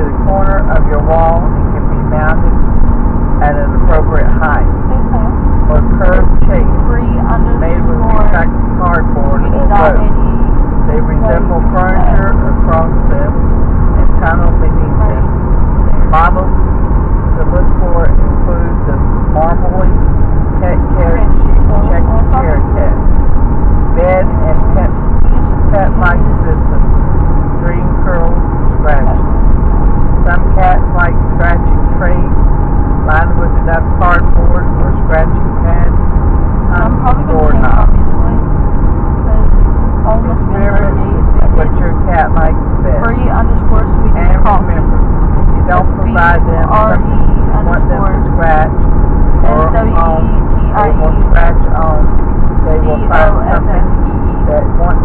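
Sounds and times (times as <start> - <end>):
voices talking: 0.0 - 2.5, 3.4 - 15.3, 15.9 - 16.6, 17.3 - 23.1, 24.0 - 27.0, 27.6 - 29.2, 30.2 - 36.0, 36.7 - 38.4, 39.2 - 44.9, 45.6 - 48.8, 49.4 - 55.0
car cabin road rumble: 0.0 - 55.0.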